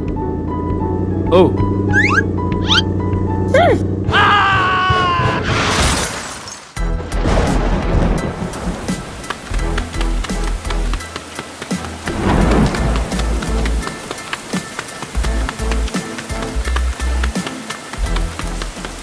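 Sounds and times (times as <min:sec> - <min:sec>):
background music with bass: 0:00.0 - 0:05.1, 0:06.8 - 0:14.2, 0:15.2 - 0:19.0
heavy rain: 0:06.3 - 0:19.0
thunder: 0:07.0 - 0:09.5, 0:12.1 - 0:14.0.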